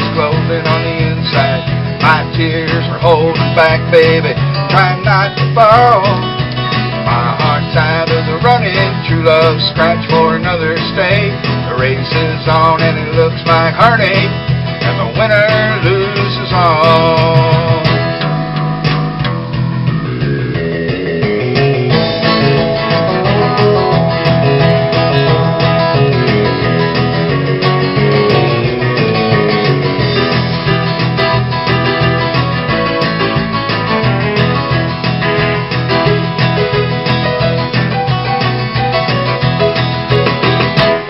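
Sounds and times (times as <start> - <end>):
acoustic guitar strumming: 0.0 - 41.0
bass line: 0.0 - 41.0.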